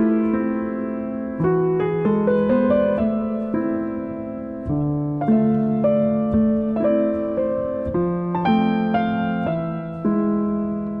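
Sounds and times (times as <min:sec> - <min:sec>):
slow gentle piano melody: 0:00.0 - 0:11.0.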